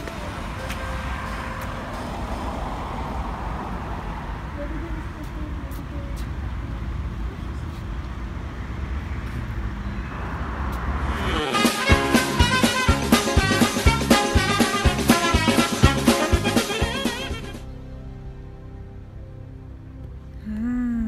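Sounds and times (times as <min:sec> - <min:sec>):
road traffic noise: 0:00.0 - 0:20.6.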